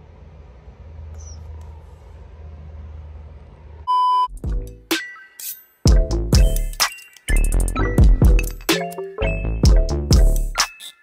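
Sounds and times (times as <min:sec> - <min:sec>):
low hum: 0:00.0 - 0:03.9
faint high chirp: 0:01.2 - 0:01.5.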